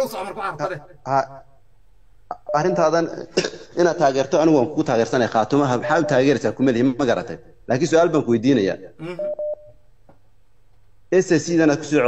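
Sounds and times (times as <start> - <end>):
short electronic beeps: 9.2 - 9.8.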